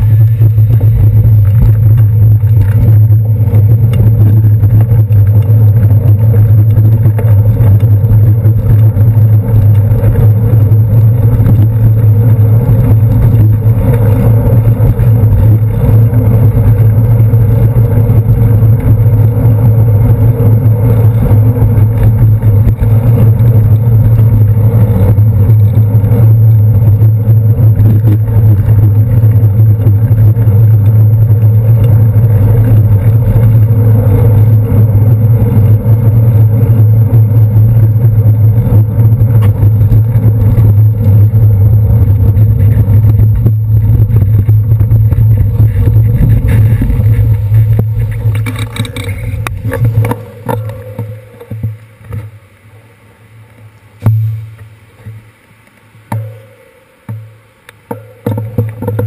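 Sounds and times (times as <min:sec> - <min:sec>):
bicycle rolling over pavement: 0:00.0 - 0:56.2, 0:56.9 - 0:59.0
buses and cars in traffic: 0:00.0 - 0:59.0.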